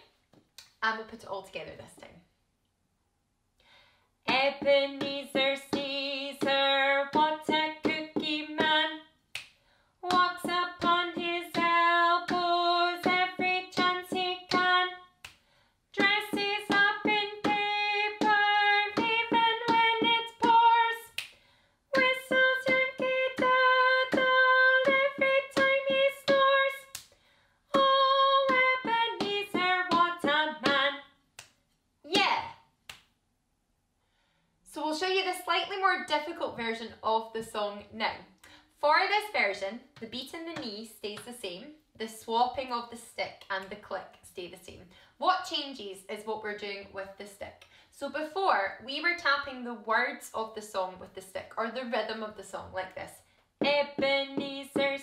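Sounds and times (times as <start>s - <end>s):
woman singing unaccompanied: 4.3s - 9.0s, 10.0s - 15.1s, 16.0s - 21.2s, 21.9s - 27.0s, 27.7s - 31.0s, 53.6s - 55.0s
drumstick tapping on floor: 10.1s - 14.8s, 16.0s - 20.7s, 27.8s - 30.8s.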